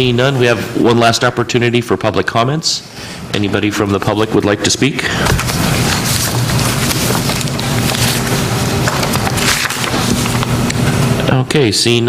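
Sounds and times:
low electrical hum with hiss: 0:00.0 - 0:12.0.

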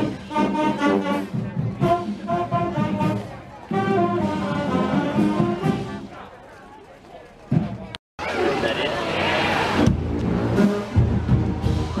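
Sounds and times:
low brass notes: 0:00.0 - 0:06.1
marching band playing: 0:00.0 - 0:06.3, 0:07.4 - 0:12.0.

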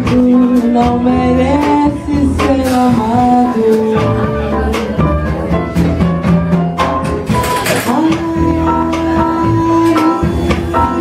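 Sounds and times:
woman singing: 0:00.0 - 0:05.4, 0:07.4 - 0:11.0
drums with cymbal wash: 0:00.0 - 0:11.0
piano: 0:00.0 - 0:11.0
upright bass: 0:00.0 - 0:11.0.

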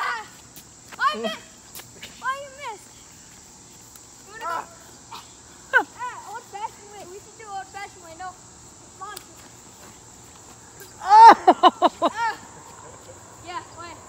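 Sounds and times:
high-pitched insect chorus: 0:00.0 - 0:14.0
people calling out: 0:04.3 - 0:06.5, 0:10.8 - 0:14.0.

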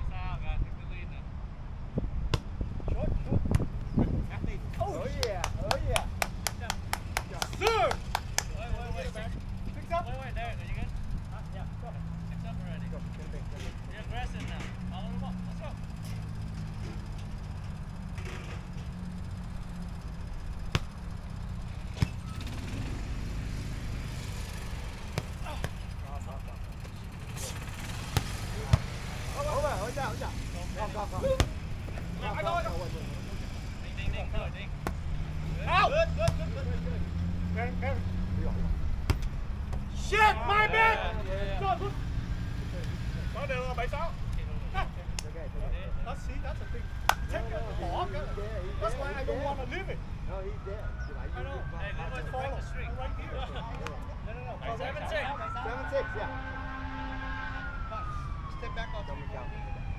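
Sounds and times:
wind noise on microphone: 0:01.8 - 0:04.9
distant voices: 0:02.9 - 0:59.8
volleyball being hit: 0:20.6 - 0:21.0, 0:25.0 - 0:25.9, 0:34.8 - 0:35.1, 0:39.0 - 0:39.8.

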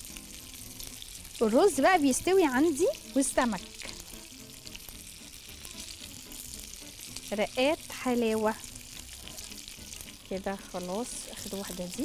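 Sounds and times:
food frying in hot oil: 0:00.0 - 0:12.0.

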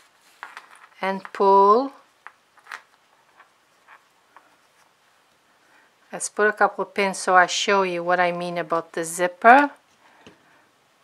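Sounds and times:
fabric rustling: 0:00.0 - 0:01.0.

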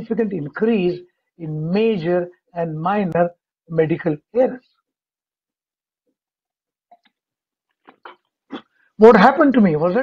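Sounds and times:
man swallowing: 0:06.9 - 0:08.8.

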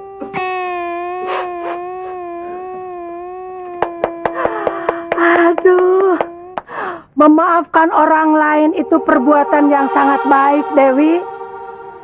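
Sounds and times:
man crying and wailing: 0:00.0 - 0:06.7.

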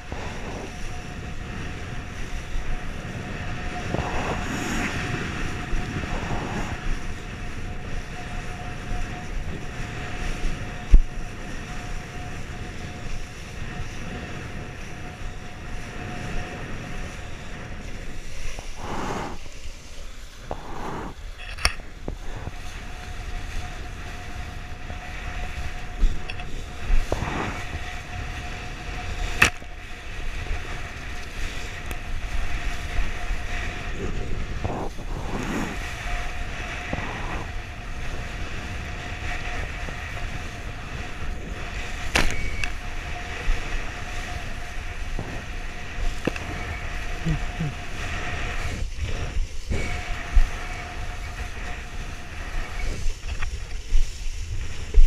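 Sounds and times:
wind on microphone: 0:00.0 - 0:55.0.

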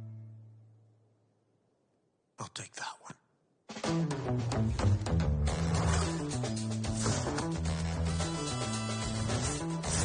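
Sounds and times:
person whispering: 0:02.4 - 0:03.3.

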